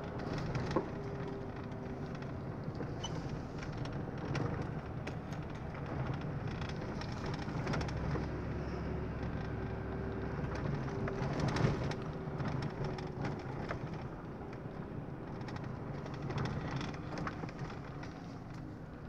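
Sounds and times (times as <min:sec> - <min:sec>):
car engine and tyre rumble: 0:00.0 - 0:19.0.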